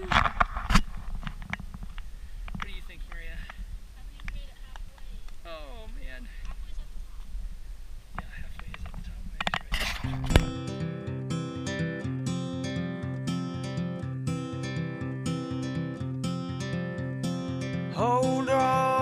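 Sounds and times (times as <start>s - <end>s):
acoustic guitar picking: 9.4s - 19.0s.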